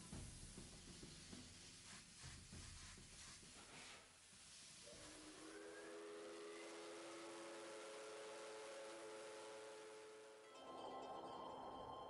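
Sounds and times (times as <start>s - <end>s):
hiss of escaping steam: 0.0s - 10.3s
steam locomotive whistle: 4.8s - 10.6s.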